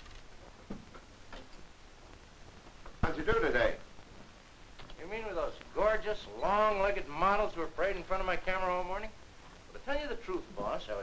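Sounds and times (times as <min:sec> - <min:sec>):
film soundtrack hiss: 0:00.0 - 0:11.0
faint clicks: 0:04.7 - 0:05.0.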